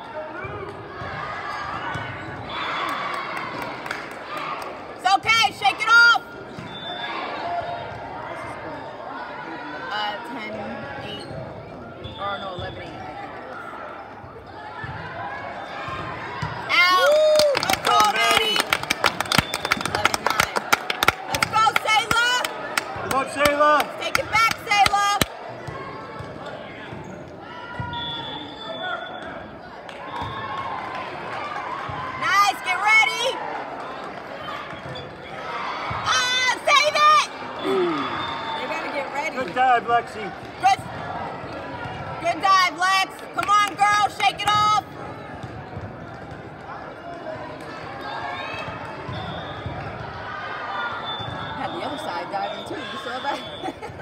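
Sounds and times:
crowd chatter: 0:00.0 - 0:54.0
sneakers squeaking on court: 0:06.4 - 0:07.1, 0:26.3 - 0:27.4, 0:34.7 - 0:35.4
people calling out: 0:36.0 - 0:39.0.

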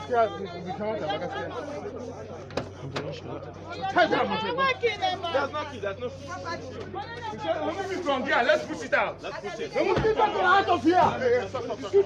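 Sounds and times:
people talking excitedly: 0:00.0 - 0:12.0.

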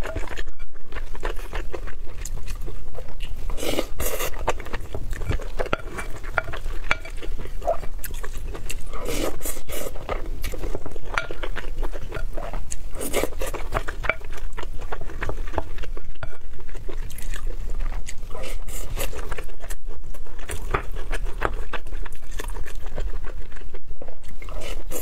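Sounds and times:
chewing: 0:00.0 - 0:25.0.

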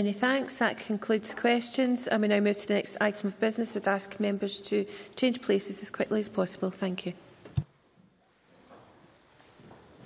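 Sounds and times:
faint footsteps and shuffling: 0:07.3 - 0:10.0.

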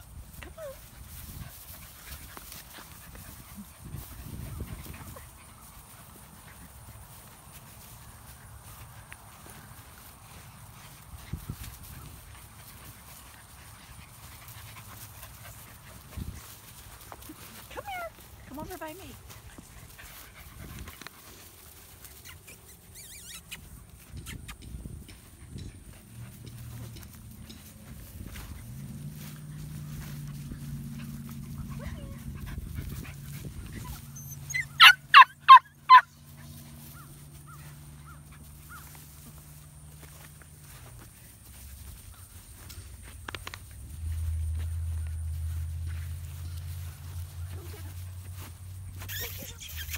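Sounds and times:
puppy yapping: 0:33.9 - 0:36.1.

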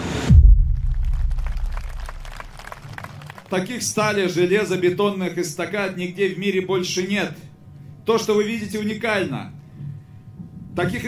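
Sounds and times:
deep bass boom: 0:00.0 - 0:02.8.

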